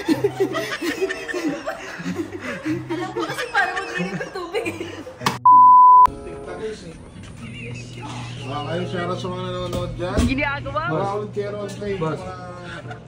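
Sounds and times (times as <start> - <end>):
people chuckling: 0.0 - 5.4
censor bleep: 5.4 - 6.1.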